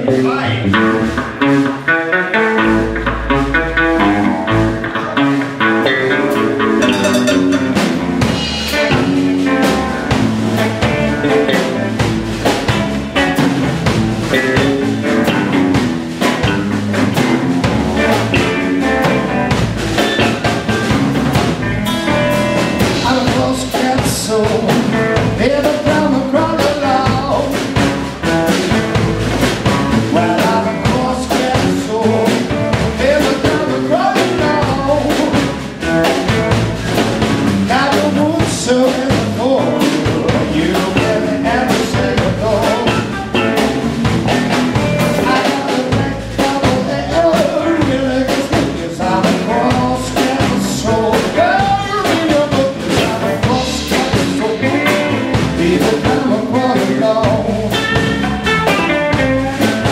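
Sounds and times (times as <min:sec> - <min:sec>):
blues band playing: 0:00.0 - 0:59.9.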